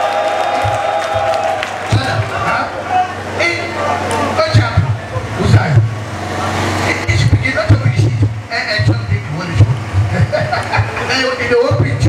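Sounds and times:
steady low hum: 0.4s - 12.0s.

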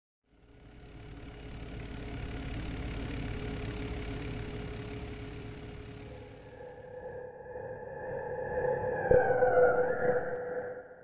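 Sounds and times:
low rumbling hum: 0.3s - 9.5s.

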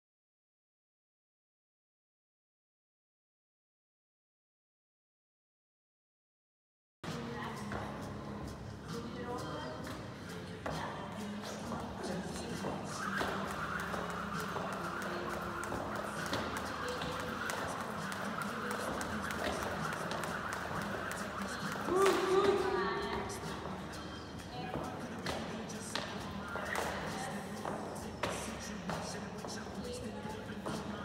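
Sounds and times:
voices in a gym hall: 7.0s - 31.0s.

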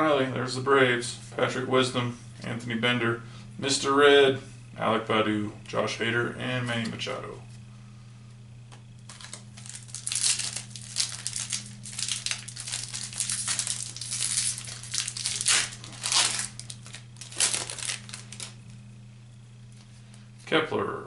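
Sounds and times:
plastic wrapper crinkling: 9.1s - 18.6s.

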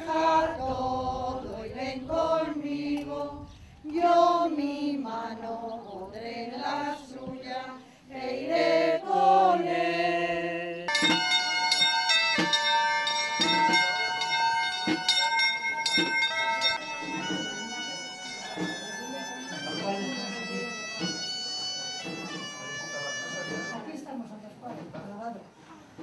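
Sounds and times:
sharp knocks: 10.9s - 13.9s
melody of bright held notes: 10.9s - 23.8s.

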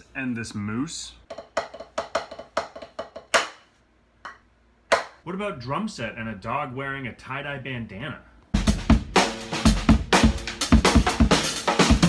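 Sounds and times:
drumsticks tapping practice pad: 1.2s - 5.2s.

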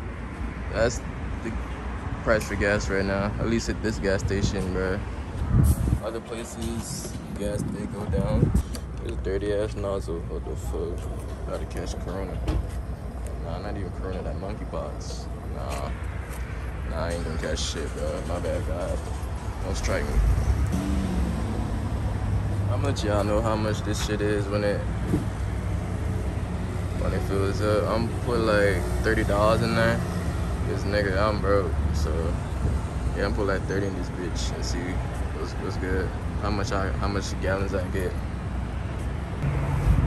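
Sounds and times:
road traffic rumble: 0.0s - 40.0s.

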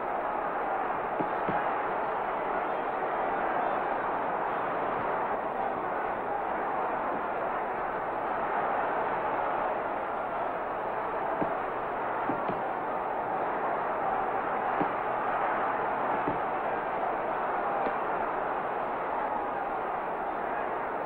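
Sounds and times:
crowd noise: 0.0s - 21.0s.

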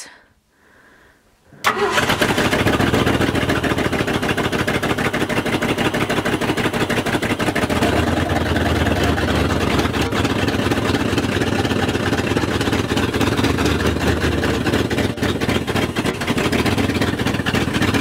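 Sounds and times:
truck engine running loud: 1.7s - 18.0s.

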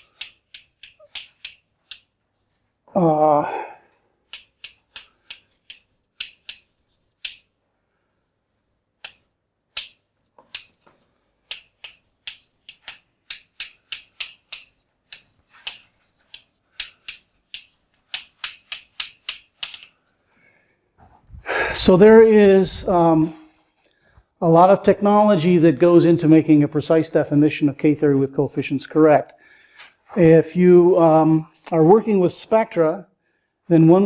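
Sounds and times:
chalk tapping and scratching: 0.0s - 2.7s, 4.2s - 7.6s, 8.2s - 20.0s.

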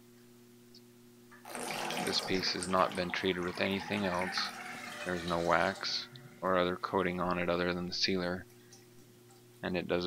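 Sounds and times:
faint electrical hum: 0.0s - 10.0s
water splashing into bathtub: 1.4s - 6.7s.

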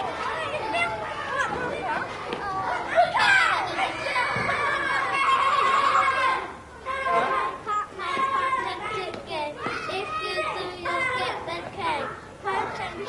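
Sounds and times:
children calling and chattering: 0.0s - 13.0s.

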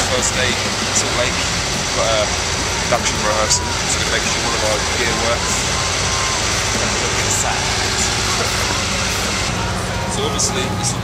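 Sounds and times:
bus engine idling: 0.0s - 11.0s
faint voices: 0.0s - 11.0s.

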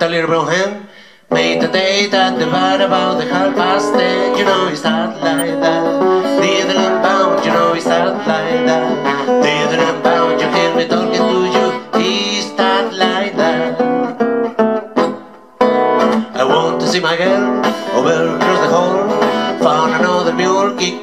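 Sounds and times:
man singing: 0.0s - 14.1s, 16.3s - 21.0s
acoustic guitar blues: 0.0s - 21.0s.

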